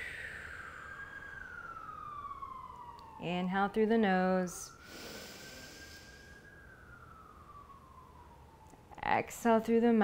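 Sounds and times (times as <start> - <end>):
faint distant siren: 0.0 - 10.0
breath through nose: 4.8 - 6.4.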